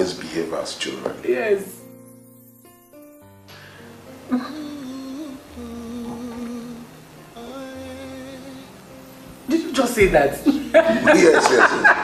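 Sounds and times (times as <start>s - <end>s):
keyboard chords: 1.1s - 12.0s
wordless humming voice: 4.3s - 8.8s.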